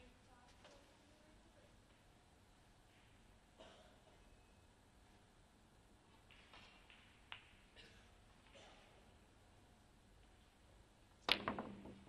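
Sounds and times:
snooker balls clacking: 6.2 - 7.8, 11.2 - 12.0
cue striking ball: 11.2 - 12.0.

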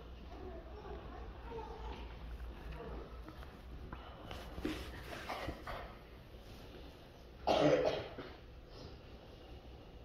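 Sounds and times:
faint scattered sounds: 0.0 - 10.0
person coughing: 7.4 - 8.4.

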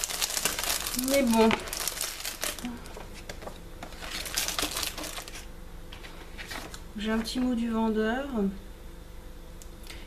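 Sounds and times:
packaging crinkling: 0.0 - 5.5.

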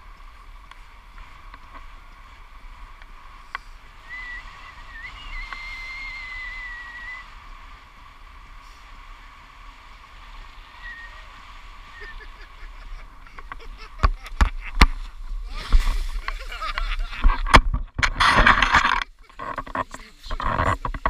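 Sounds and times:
wind rushing over microphone: 0.0 - 21.0
person whistling held note: 4.0 - 7.3, 10.8 - 11.3.

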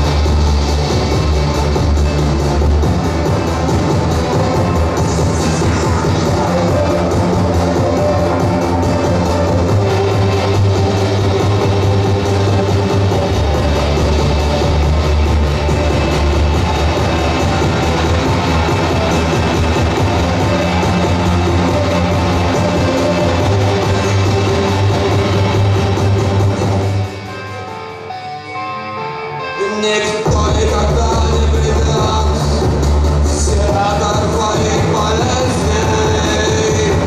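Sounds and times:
loud electronic music: 0.0 - 37.0.

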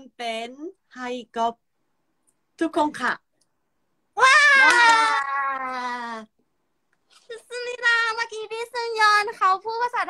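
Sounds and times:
woman's excited cry: 4.2 - 6.2.

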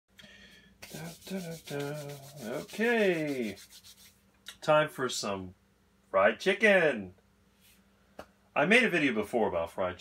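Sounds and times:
faint room noise: 0.1 - 10.0
man making wordless vocal sounds: 0.8 - 3.6.

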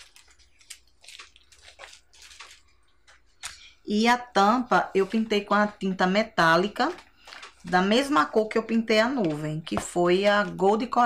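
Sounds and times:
rustling of sticker sheet: 0.0 - 3.6, 4.7 - 10.9.

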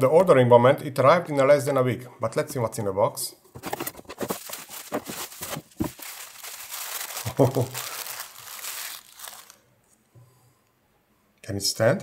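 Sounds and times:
bubble wrap and paper crinkling: 3.6 - 9.6.

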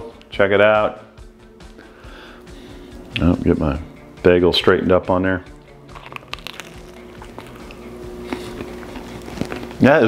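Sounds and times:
steady low hum: 5.4 - 10.0
person chewing: 5.8 - 9.8.

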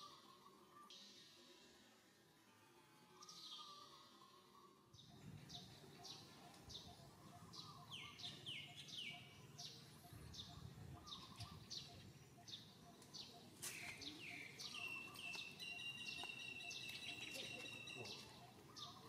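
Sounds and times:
faint bird chirping: 3.1 - 19.0.

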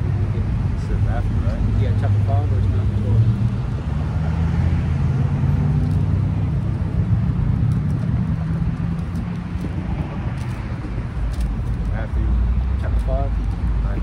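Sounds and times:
vehicle engine rumbling: 0.0 - 14.0.

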